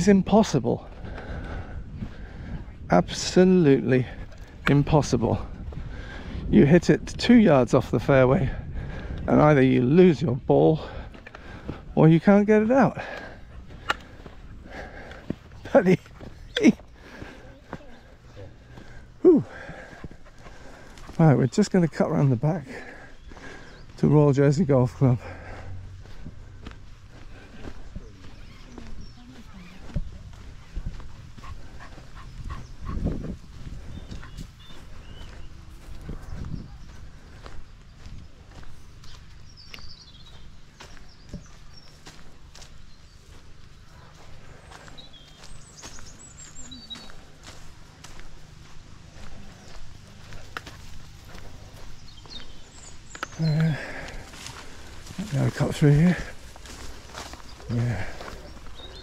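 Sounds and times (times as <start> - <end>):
footsteps on gravel path: 0.0 - 59.0.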